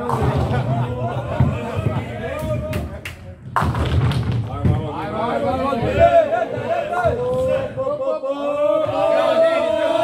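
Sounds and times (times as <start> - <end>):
bowling ball rolling: 0.0 - 2.9
voices in a hall: 0.0 - 10.0.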